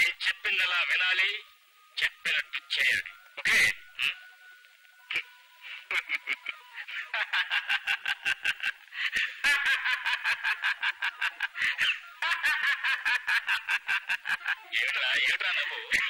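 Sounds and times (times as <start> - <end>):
man laughing hard: 5.9 - 14.7.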